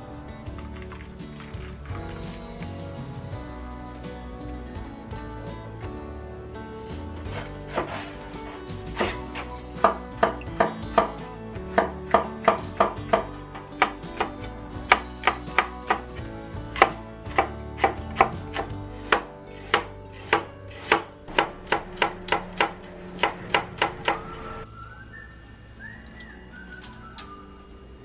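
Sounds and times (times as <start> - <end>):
soft background music: 0.0 - 28.0
cleaver chopping on wooden board: 9.0 - 16.2, 16.8 - 24.2.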